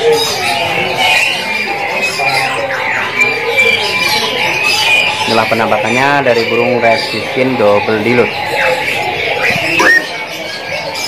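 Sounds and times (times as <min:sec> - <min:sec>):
murmur of voices: 0:00.0 - 0:11.0
songbirds chirping and trilling: 0:00.0 - 0:11.0.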